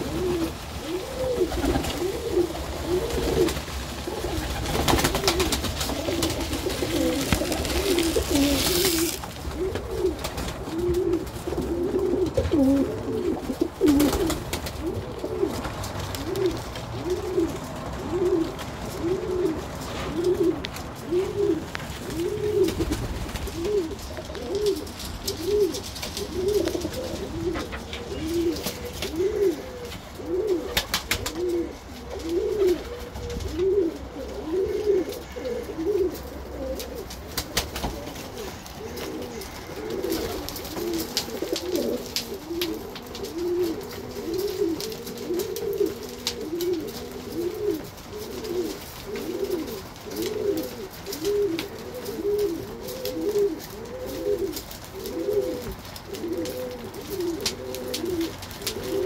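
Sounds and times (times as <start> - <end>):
wings flapping: 0.0 - 34.0, 36.7 - 59.0
pigeons cooing: 0.0 - 59.0
seed pouring: 6.0 - 9.4.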